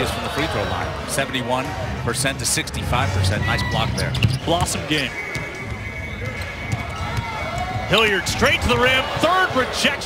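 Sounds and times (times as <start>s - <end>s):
arena noise: 0.0s - 10.0s
background music: 0.0s - 10.0s.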